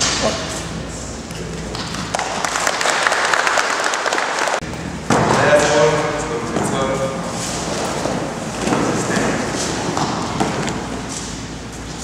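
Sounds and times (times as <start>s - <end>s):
audience applauding: 1.7s - 4.6s.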